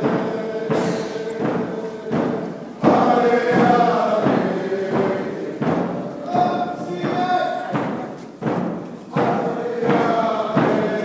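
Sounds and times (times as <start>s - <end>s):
group singing a chant: 0.0s - 11.0s
steady drumbeat: 0.0s - 11.0s.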